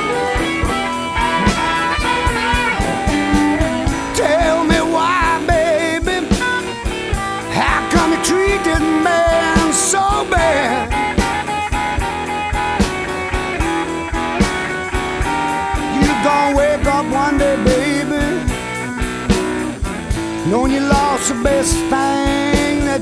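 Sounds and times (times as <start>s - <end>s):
bass: 0.0s - 23.0s
electric guitar lead lines: 0.0s - 23.0s
steady drum beat: 0.0s - 23.0s.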